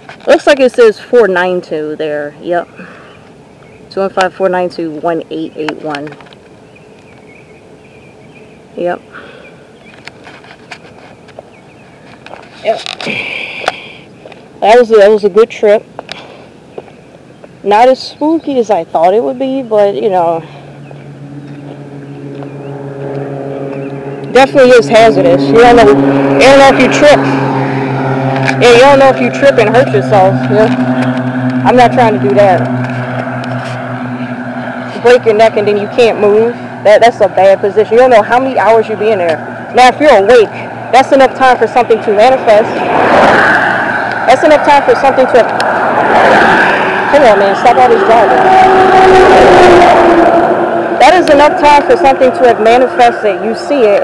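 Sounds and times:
low engine hum: 0:00.0 - 0:54.0.

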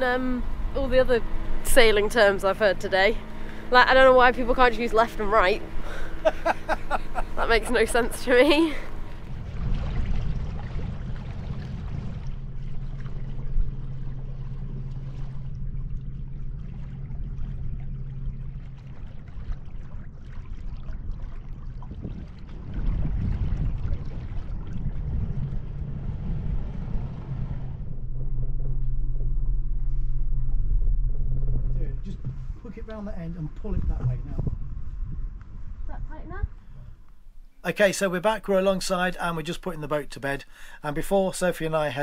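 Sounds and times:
diesel engine running: 0:00.0 - 0:20.1.

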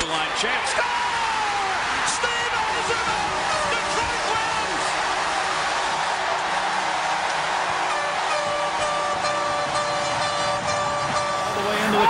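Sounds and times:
arena crowd cheering: 0:00.0 - 0:12.0
music with steady tones: 0:06.5 - 0:12.0.

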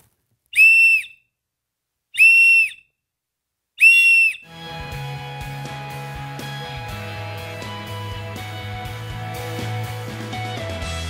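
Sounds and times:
shrill whistle blasts: 0:00.5 - 0:01.3, 0:02.2 - 0:03.0, 0:03.8 - 0:04.5
music: 0:04.4 - 0:11.0.

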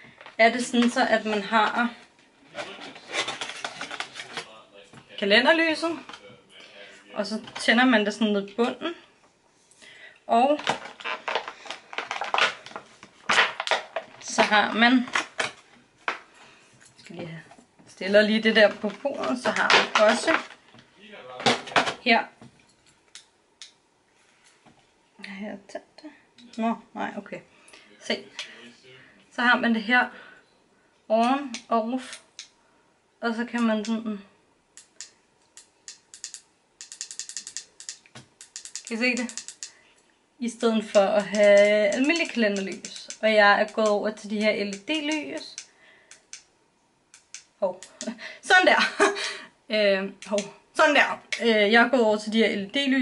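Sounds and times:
packaging crinkling and rustling: 0:10.6 - 0:14.4
small plastic ratchet clicks: 0:34.8 - 0:39.7.

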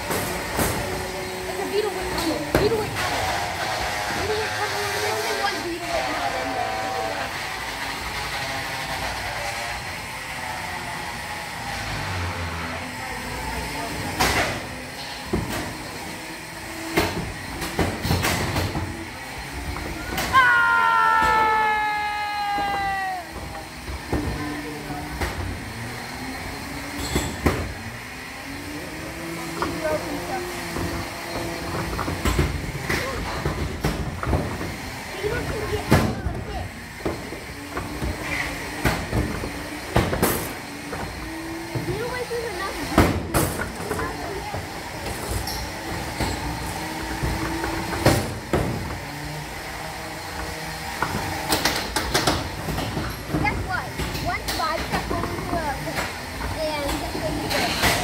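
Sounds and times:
electric motors whining: 0:00.0 - 0:58.0.

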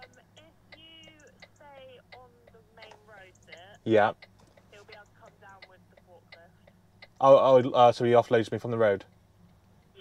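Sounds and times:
light ticking: 0:00.0 - 0:08.4, 0:09.0 - 0:10.0
steady low hum: 0:00.0 - 0:10.0.

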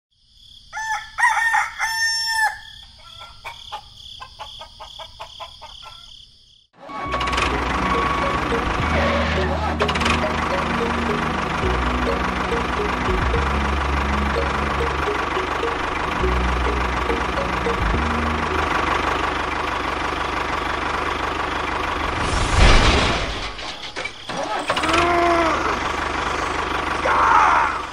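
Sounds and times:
rooster crowing and clucking: 0:00.7 - 0:06.2
music with bass line and melody: 0:07.2 - 0:19.2.

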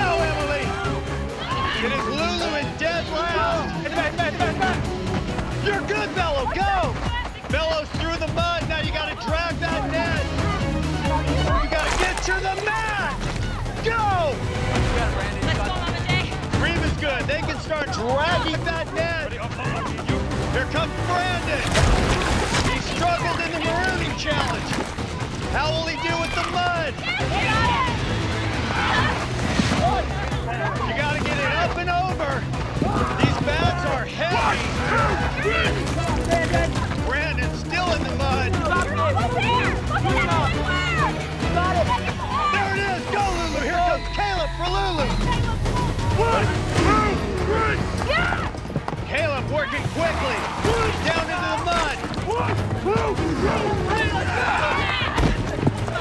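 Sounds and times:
music with low pulse: 0:00.0 - 0:56.0
people yelling and shouting: 0:00.0 - 0:56.0
people shouting short calls: 0:49.6 - 0:55.4.

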